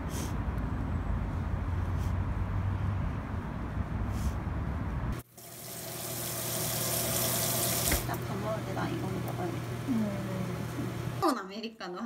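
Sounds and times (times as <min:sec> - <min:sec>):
tap water running into sink: 0:05.4 - 0:08.3.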